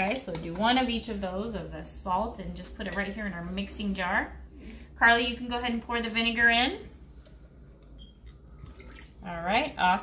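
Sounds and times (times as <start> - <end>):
liquid trickling into a jar: 8.0 - 9.3.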